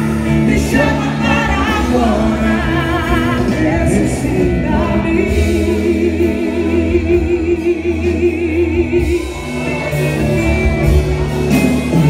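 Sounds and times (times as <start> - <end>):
band backing: 0.0 - 12.0.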